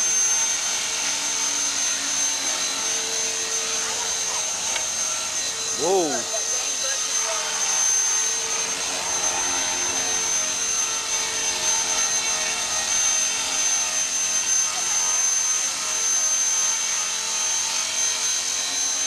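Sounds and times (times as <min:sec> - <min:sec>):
rc helicopter motor whine: 0:00.0 - 0:19.0
rotor blades whirring: 0:00.0 - 0:19.0.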